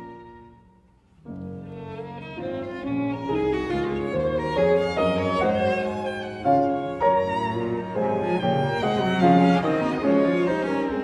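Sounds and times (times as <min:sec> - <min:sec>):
cello: 0:00.0 - 0:11.0
grand piano: 0:00.0 - 0:11.0
violin: 0:00.0 - 0:11.0.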